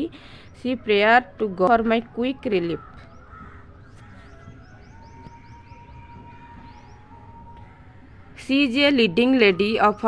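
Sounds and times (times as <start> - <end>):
faint bird chirping: 0.0 - 10.0.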